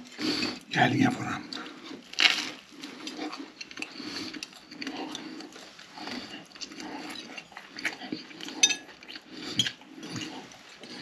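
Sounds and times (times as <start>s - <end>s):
person chewing with mouth clicks: 0.0s - 11.0s.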